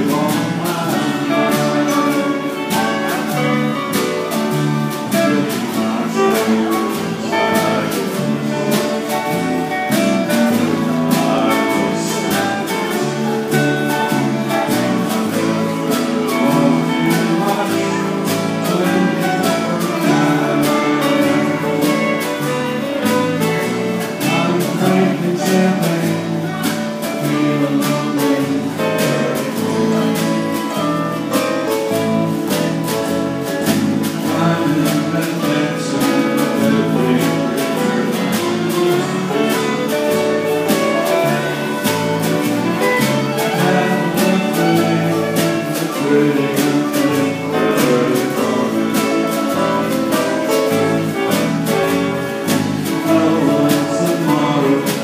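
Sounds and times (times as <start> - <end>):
live country band playing: 0.0 - 55.0.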